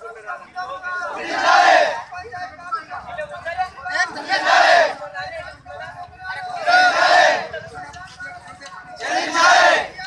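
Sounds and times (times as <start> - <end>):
crowd shouting a slogan: 0.8 - 2.2, 3.9 - 5.2, 6.4 - 7.6, 9.0 - 10.0.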